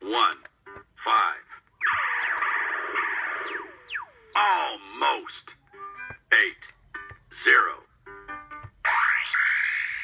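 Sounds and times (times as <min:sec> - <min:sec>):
toy electronic voice: 0:01.0 - 0:05.5, 0:08.8 - 0:10.0
electronic falling swoops: 0:01.8 - 0:04.4.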